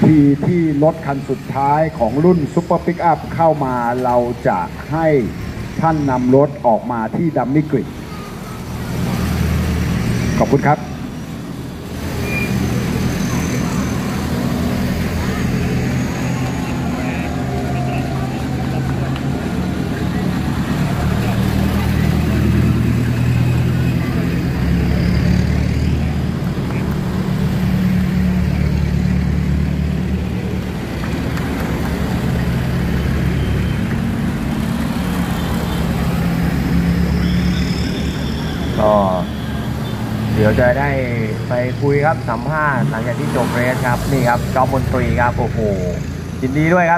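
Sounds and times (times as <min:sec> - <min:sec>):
pickup truck engines driving past: 0:00.0 - 0:46.9.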